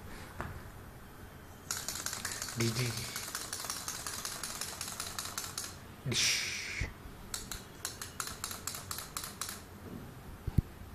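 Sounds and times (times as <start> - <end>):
mechanical toy clicking: 1.7 - 5.8, 7.3 - 9.7.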